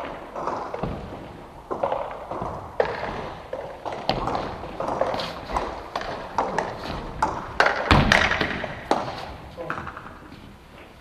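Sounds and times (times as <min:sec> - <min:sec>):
table tennis ball bouncing: 0:00.0 - 0:10.3
loud thud: 0:07.8 - 0:08.8.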